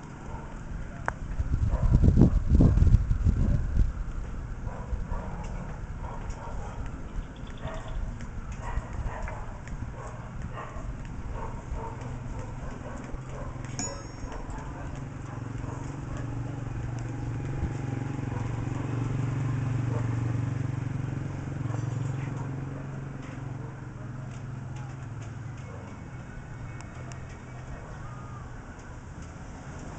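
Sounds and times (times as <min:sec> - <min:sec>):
tools tapping on steel bars: 0:13.6 - 0:15.1.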